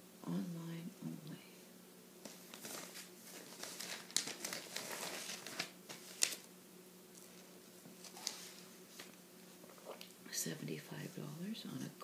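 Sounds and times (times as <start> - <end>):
paper pages rustling: 2.2 - 6.5, 7.2 - 10.1.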